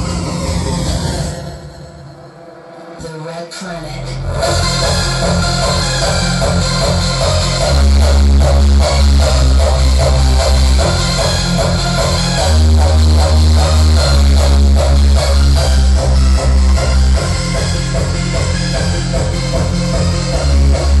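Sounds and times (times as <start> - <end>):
distorted kick drum: 4.4 - 21.0
synth melody: 4.4 - 21.0.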